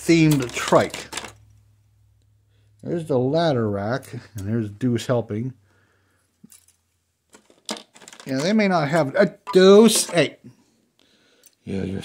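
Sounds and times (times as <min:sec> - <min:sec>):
plastic parts clicking and rattling: 0:00.0 - 0:01.5, 0:06.4 - 0:09.1, 0:09.8 - 0:10.3.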